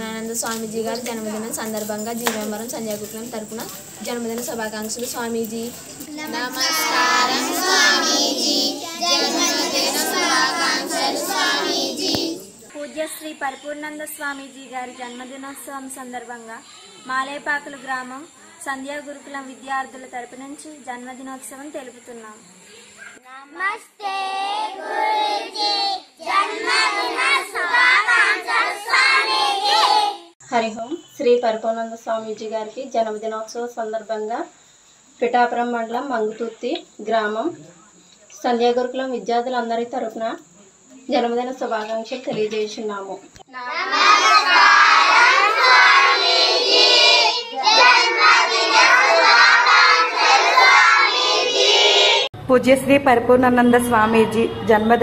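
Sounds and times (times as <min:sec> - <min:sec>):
children chanting in unison: 0:06.0 - 0:12.6, 0:23.3 - 0:30.4, 0:43.5 - 0:52.3.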